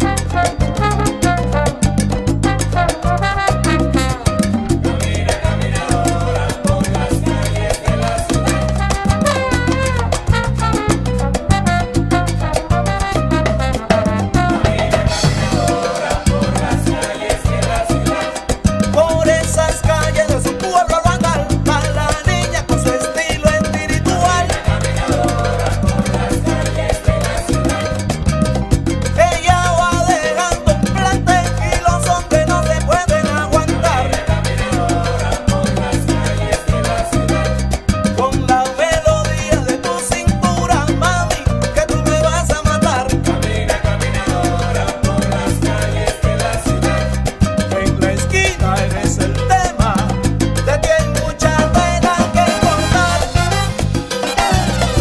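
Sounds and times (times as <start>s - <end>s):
salsa band playing: 0.0s - 55.0s.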